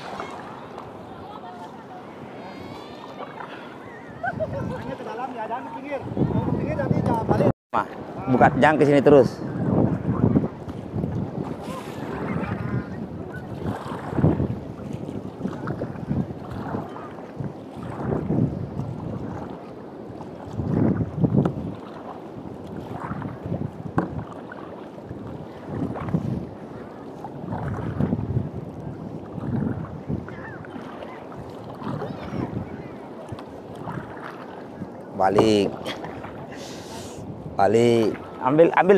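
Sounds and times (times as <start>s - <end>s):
paddle splashing in water: 0.0s - 8.7s, 9.4s - 38.9s
water slapping against hull: 0.0s - 8.8s, 9.5s - 38.9s
wind buffeting microphone: 0.0s - 38.9s.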